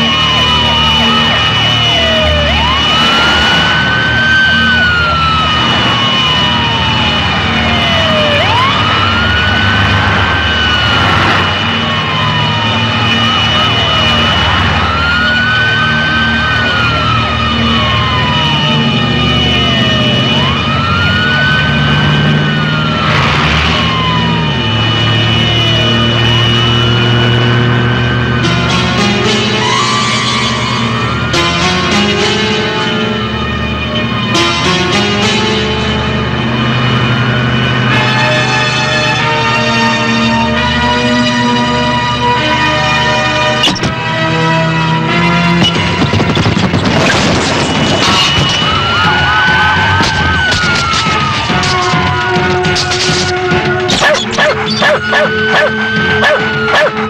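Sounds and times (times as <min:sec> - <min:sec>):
ambulance siren wailing: 0:00.0 - 0:57.0
film music: 0:00.0 - 0:57.0.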